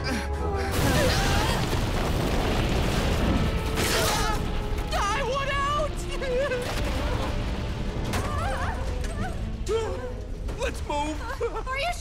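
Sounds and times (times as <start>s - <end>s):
deep rumble with crashing: 4.4s - 12.0s.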